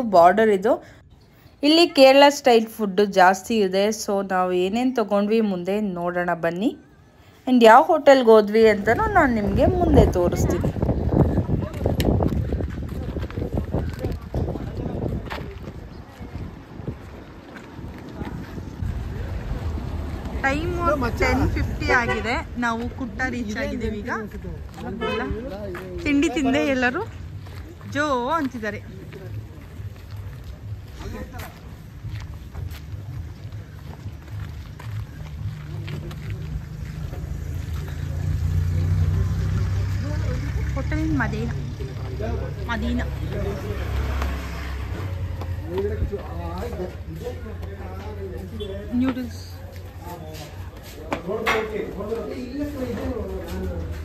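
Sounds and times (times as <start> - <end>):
faint street noise: 0.0 - 54.0
people's voices: 0.0 - 54.0
wind rumbling on microphone: 8.8 - 23.1
engine running low rumble: 31.9 - 48.3.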